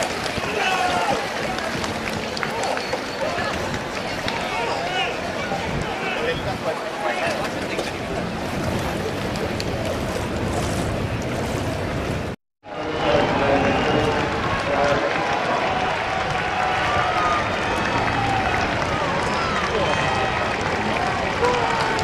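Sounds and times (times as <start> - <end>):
crowd shouting and cheering: 0.0 - 7.5, 12.7 - 22.0.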